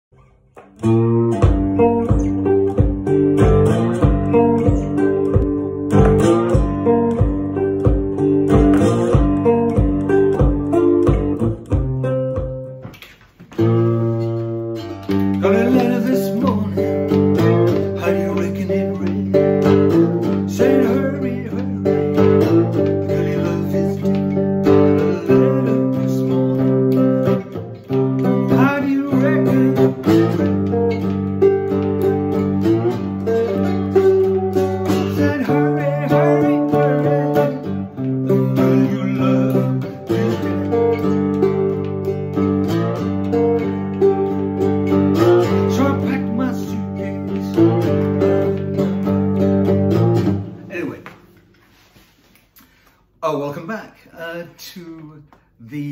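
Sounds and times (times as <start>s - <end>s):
cigar box guitar blues riff: 0.1s - 55.9s.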